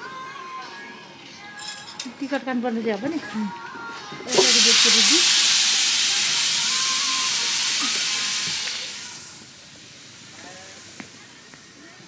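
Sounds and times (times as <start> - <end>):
loud steady hiss: 4.3 - 12.0.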